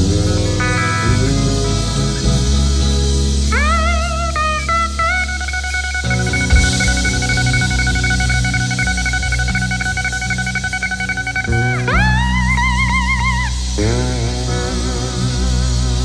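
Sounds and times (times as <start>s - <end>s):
cymbal crash: 0.0s - 16.0s
electric guitar bass and drums: 0.0s - 16.0s
lap steel guitar: 0.0s - 16.0s.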